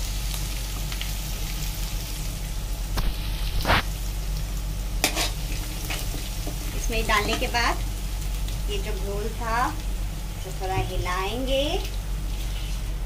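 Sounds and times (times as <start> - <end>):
garlic sizzling in hot oil: 0.0 - 13.0
ladle scraping pan: 5.0 - 6.1.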